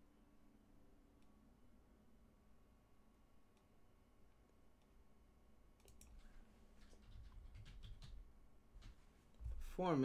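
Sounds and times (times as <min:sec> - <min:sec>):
computer keyboard key clicks: 0:05.8 - 0:08.2.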